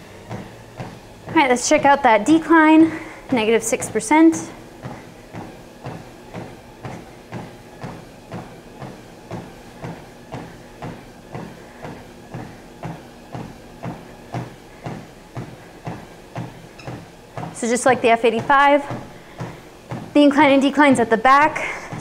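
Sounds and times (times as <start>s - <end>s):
footfalls on treadmill: 0.0s - 22.0s
treadmill belt and motor hum: 0.0s - 22.0s.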